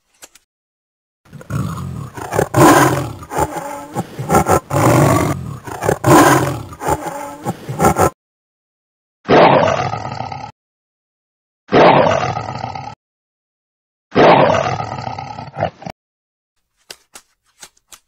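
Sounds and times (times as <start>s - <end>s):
tiger roaring and growling: 1.3s - 8.2s, 9.3s - 10.5s, 11.7s - 13.0s, 14.1s - 15.9s.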